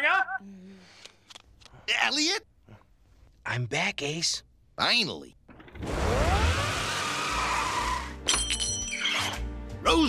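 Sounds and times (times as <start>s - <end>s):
cartoon tyres screeching: 5.7s - 8.2s.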